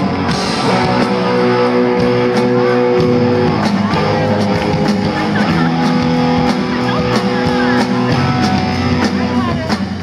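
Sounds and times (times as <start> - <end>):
rock band sustained guitar chord: 0.0 - 10.0.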